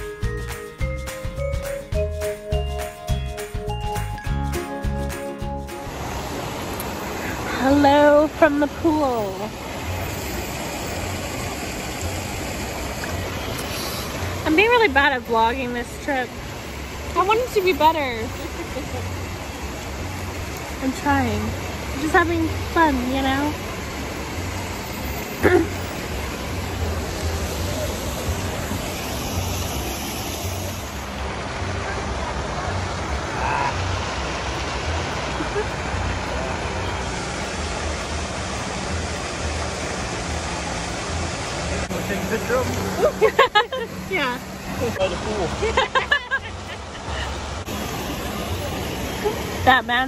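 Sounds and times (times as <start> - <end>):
fountain splashing: 0.0 - 50.0.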